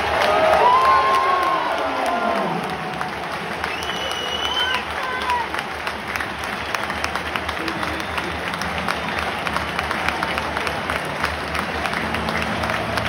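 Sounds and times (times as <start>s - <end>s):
crowd applauding: 0.0s - 13.0s.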